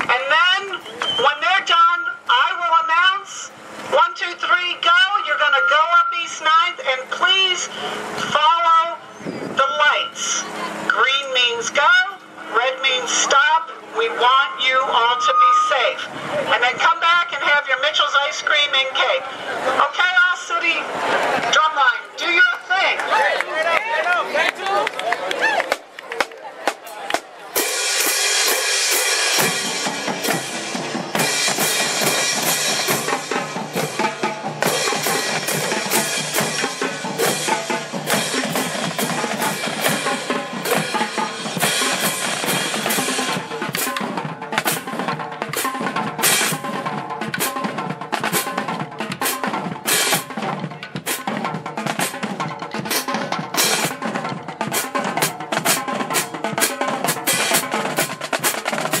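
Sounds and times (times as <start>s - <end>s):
marching drumline playing: 25.6s - 59.0s
bass drums: 26.7s - 59.0s.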